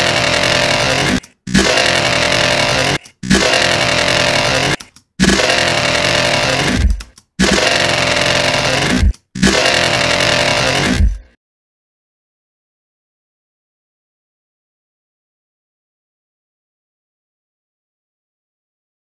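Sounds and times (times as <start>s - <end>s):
distorted dubstep bass sample: 0.0s - 11.3s.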